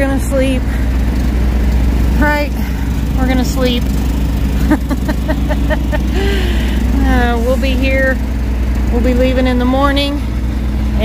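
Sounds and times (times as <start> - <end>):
portable generator humming: 0.0 - 11.0.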